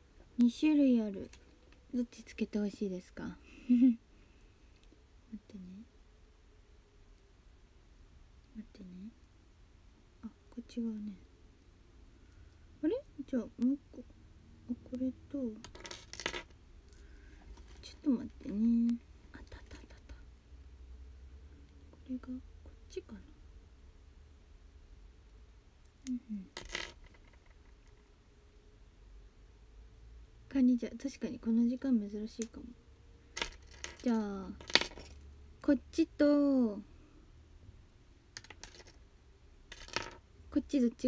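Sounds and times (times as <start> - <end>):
faint low hum: 0.0 - 41.0.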